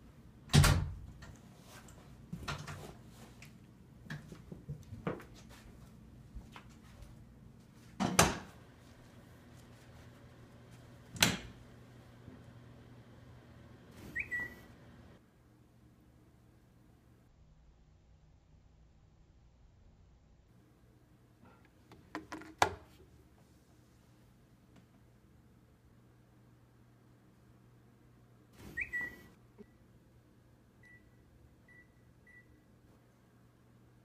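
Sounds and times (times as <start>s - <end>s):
high-pitched whistle-like tone: 14.1s - 14.6s, 28.8s - 29.3s.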